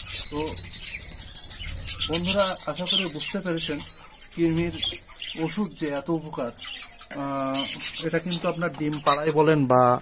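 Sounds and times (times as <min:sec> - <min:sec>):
thin high tone: 0:00.0 - 0:07.7
lovebirds chirping and squeaking: 0:00.0 - 0:10.0.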